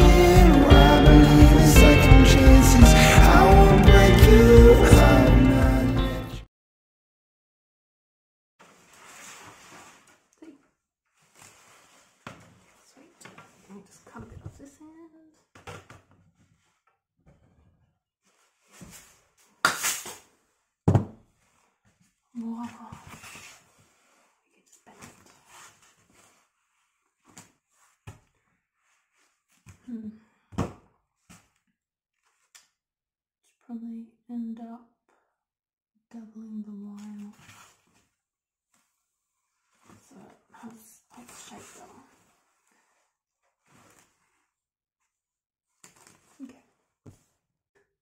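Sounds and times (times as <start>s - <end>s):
rustling of foam noodles: 8.6s - 14.2s, 18.2s - 29.8s, 41.1s - 47.4s.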